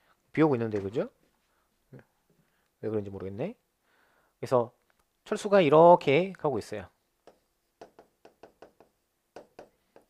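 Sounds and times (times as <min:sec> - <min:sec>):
stylus tapping on glass: 0:07.2 - 0:10.0.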